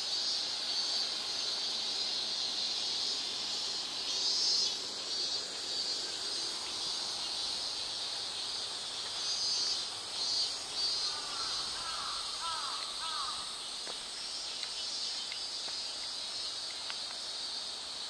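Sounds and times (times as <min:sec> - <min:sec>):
cicadas droning: 0:00.0 - 0:18.0
bird calling: 0:11.0 - 0:13.5.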